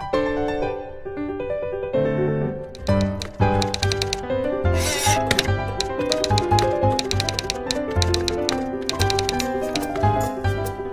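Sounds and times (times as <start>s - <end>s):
typewriter key clicks: 2.7s - 4.2s, 5.2s - 10.2s.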